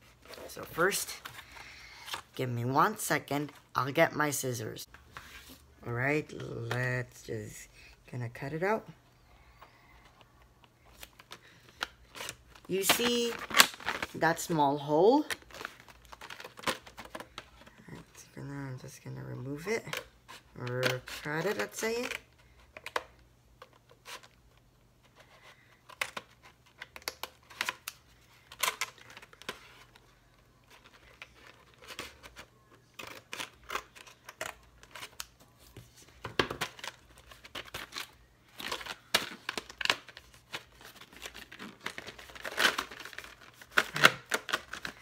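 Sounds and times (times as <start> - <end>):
packaging crinkling and tearing: 10.8 - 14.5, 15.2 - 18.0, 25.8 - 35.6, 36.4 - 45.0.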